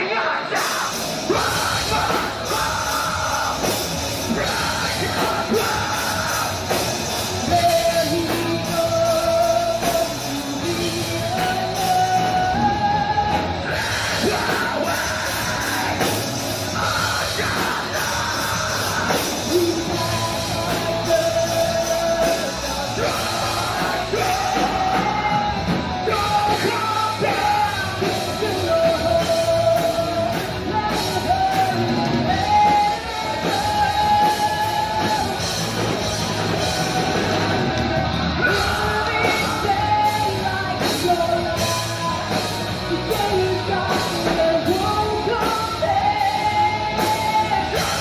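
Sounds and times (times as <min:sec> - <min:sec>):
bass: 0:00.0 - 0:48.0
drums: 0:00.0 - 0:48.0
heavy guitars: 0:00.0 - 0:48.0.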